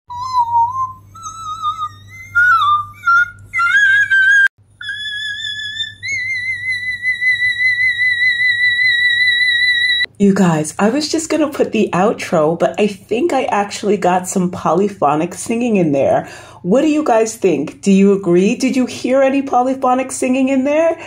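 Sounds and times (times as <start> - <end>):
woman singing high notes: 0.1 - 10.1.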